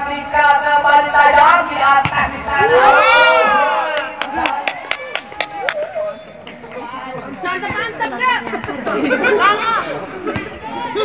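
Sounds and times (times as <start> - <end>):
chatter of voices: 1.2 - 11.0.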